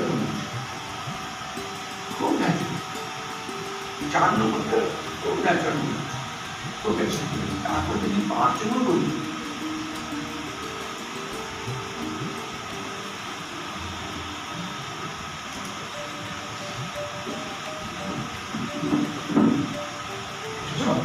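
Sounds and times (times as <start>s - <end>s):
room noise hiss: 0.0s - 21.0s.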